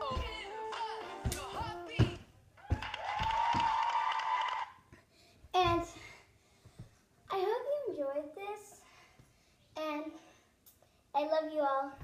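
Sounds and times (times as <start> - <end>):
bare feet thudding on floor: 0.0 - 4.0, 5.5 - 6.1.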